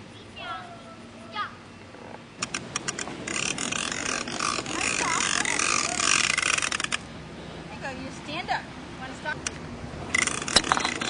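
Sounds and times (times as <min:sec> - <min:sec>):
plastic wheels rattling on asphalt: 0:02.4 - 0:07.1, 0:09.4 - 0:11.0.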